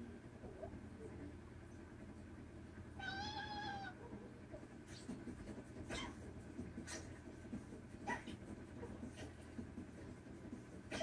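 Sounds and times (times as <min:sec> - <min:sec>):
high-pitched animal cry: 0:03.0 - 0:04.0.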